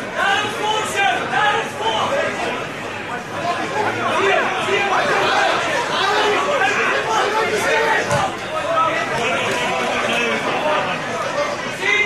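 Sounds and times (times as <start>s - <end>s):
crowd calling and chattering: 0.0s - 12.0s.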